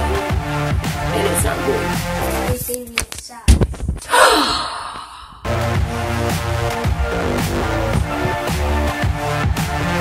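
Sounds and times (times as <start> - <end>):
breathy sigh-like exhale: 4.1 - 5.7.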